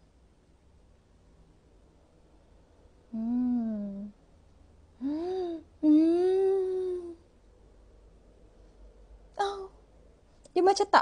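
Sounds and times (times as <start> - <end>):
woman humming: 3.1 - 4.2, 5.0 - 7.2, 9.4 - 9.7.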